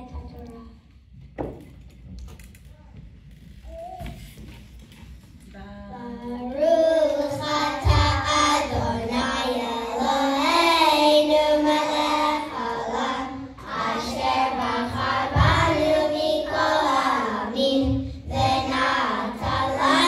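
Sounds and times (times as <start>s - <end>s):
children singing in unison: 6.4s - 20.0s.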